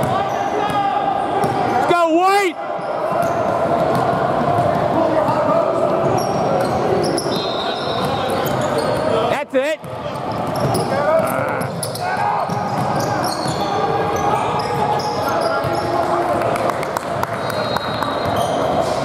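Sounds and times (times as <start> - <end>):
voices echoing in hall: 0.0 - 19.0
sneakers squeaking: 2.8 - 16.2, 17.3 - 19.0.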